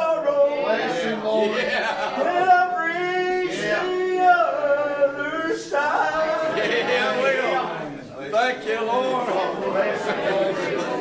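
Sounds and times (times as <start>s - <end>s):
gospel hymn singing: 0.0s - 11.0s.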